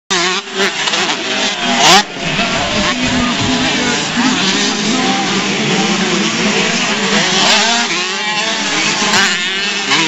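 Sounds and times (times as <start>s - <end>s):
motocross bikes buzzing: 0.1s - 10.0s
motorbike revving: 0.1s - 10.0s.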